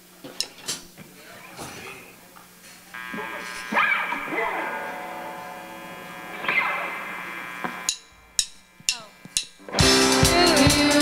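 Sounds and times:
drumstick clicks: 0.4 - 0.6, 7.6 - 9.7
held keyboard chord: 9.7 - 11.0.

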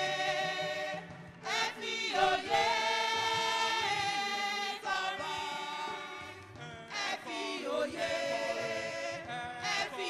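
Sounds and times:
women's choir singing: 0.0 - 10.0.

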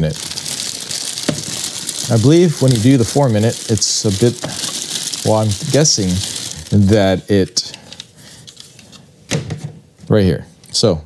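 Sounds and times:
plastic bag crinkling: 0.0 - 8.6.

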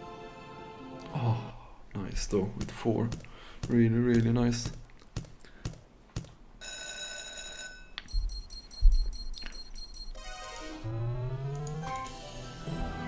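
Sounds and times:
rising electronic tones: 9.1 - 12.6.

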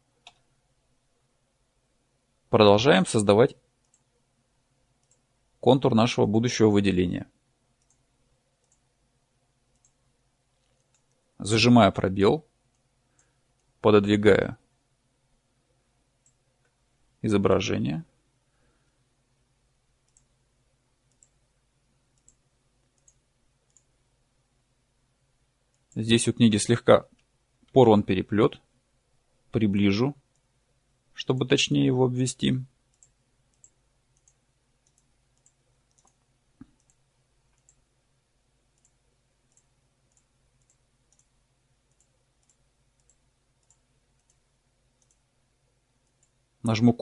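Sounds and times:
faint computer mouse clicks: 0.2 - 0.5, 3.8 - 4.1, 5.0 - 5.3, 7.8 - 8.0, 8.6 - 8.9, 9.7 - 10.0, 10.6 - 11.3, 20.0 - 20.3, 21.0 - 21.4, 22.1 - 23.9, 32.9 - 37.8, 38.7 - 41.3, 41.9 - 44.4, 45.0 - 45.2.

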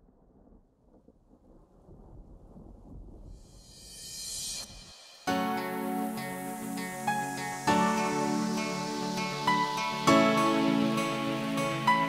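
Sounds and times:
low thunder rumble: 0.0 - 3.7
rain-like hiss: 0.5 - 12.0.

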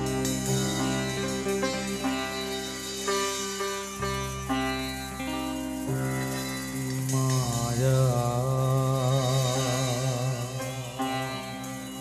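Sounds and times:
lead line sliding with vibrato: 0.0 - 12.0.

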